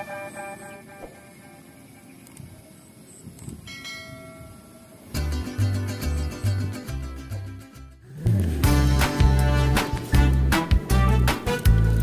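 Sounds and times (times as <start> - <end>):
ringing chime: 3.7 - 4.9.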